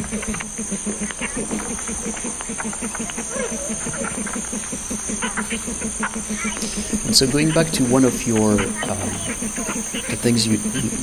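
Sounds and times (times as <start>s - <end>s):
faint clicks: 0.0s - 11.0s
low insect pulses: 0.0s - 11.0s
steady high hiss: 0.0s - 11.0s.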